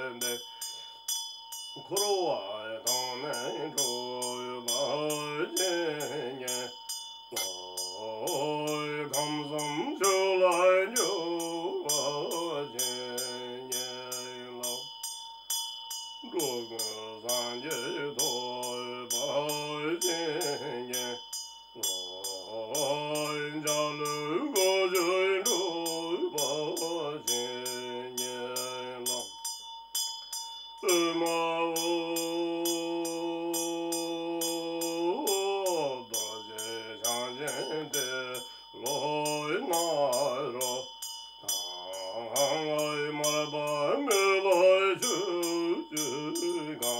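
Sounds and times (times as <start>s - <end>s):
man chanting in a low voice: 0.0s - 0.5s, 1.8s - 14.9s, 16.2s - 21.2s, 21.8s - 29.3s, 30.8s - 46.9s
hand bell ringing: 0.0s - 46.9s.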